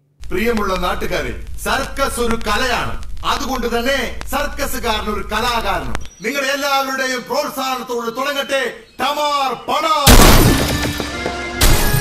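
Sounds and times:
steady low hum: 0.0 - 6.1
man speaking: 0.2 - 10.1.

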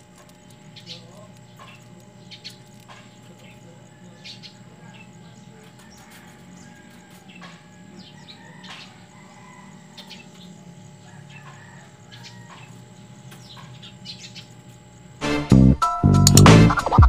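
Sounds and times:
electronic music: 15.2 - 17.0
record scratching: 16.4 - 17.0.

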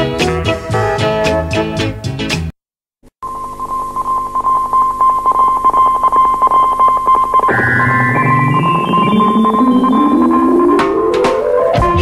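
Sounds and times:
instrumental reggae music: 0.0 - 2.5, 7.3 - 12.0.

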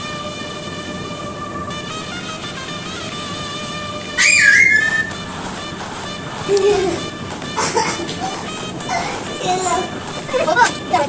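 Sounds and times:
high-pitched whistle: 4.1 - 5.8.

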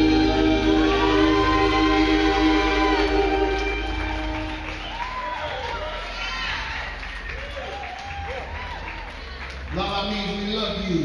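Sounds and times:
vocal group singing: 0.0 - 4.6
soul band sustained chord: 0.0 - 6.0.

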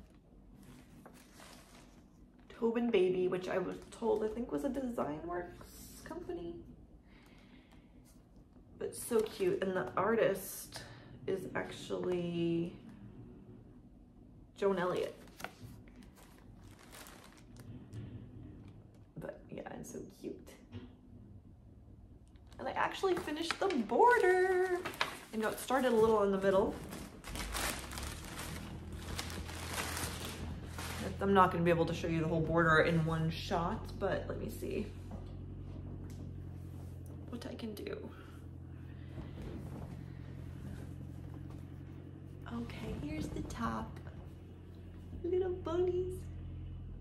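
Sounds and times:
packaging crinkling and rustling: 0.0 - 2.2, 15.0 - 17.9, 22.4 - 31.6
low steady hum: 0.0 - 47.0.

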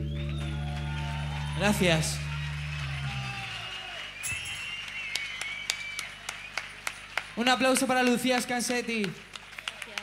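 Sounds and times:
scattered hand claps: 2.4 - 10.0.

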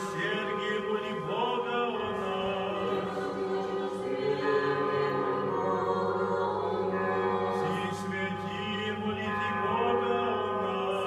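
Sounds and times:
choir singing chant: 0.0 - 11.0.

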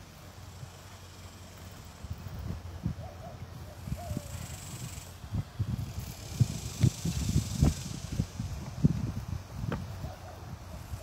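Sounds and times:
wind buffeting microphone: 1.9 - 11.0.

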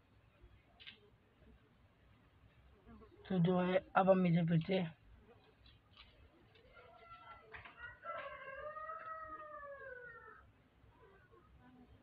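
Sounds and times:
faint distant animal call: 5.2 - 12.0.

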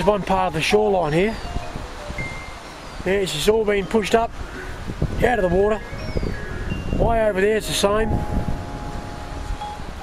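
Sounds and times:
faint chime-like ringing tones: 0.0 - 4.8, 5.4 - 10.0
wind rumbling on microphone: 0.0 - 10.0.

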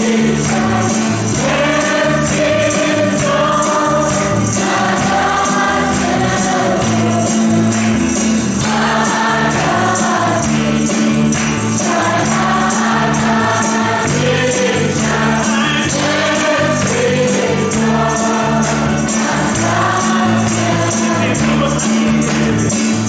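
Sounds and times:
bass guitar: 0.0 - 23.0
men singing together: 0.0 - 23.0.

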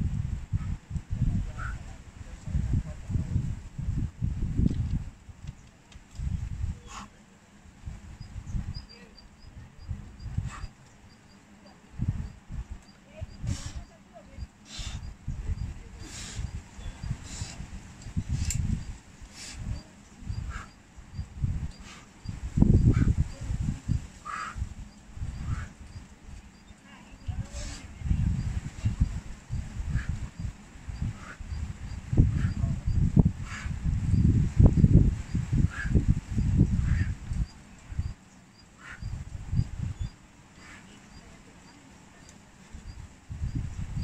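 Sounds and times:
wind buffeting microphone: 0.0 - 7.0, 7.7 - 11.2, 11.9 - 44.0.

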